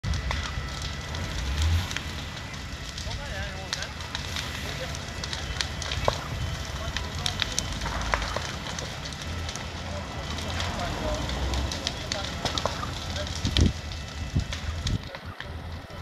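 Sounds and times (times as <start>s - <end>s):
burning roof crackling: 0.0s - 16.0s
steady low rumble: 0.0s - 16.0s.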